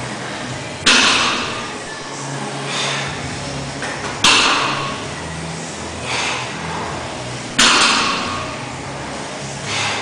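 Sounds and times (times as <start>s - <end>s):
loud metallic clank: 0.8s - 1.9s, 4.2s - 5.1s, 7.5s - 8.6s.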